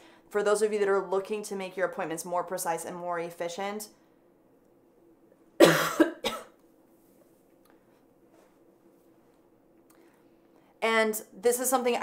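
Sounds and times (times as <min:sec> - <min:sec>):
woman coughing: 0:05.6 - 0:06.6.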